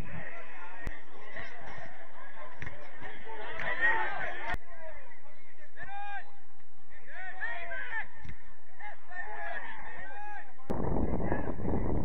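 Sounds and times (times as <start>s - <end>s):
wind rumble on microphone: 0.0s - 0.9s, 10.6s - 12.0s
distant players shouting: 0.2s - 10.6s.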